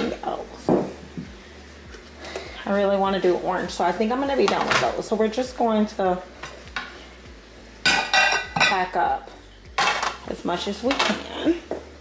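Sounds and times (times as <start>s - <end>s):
ceramic plates clinking: 7.8s - 8.9s, 9.8s - 10.2s.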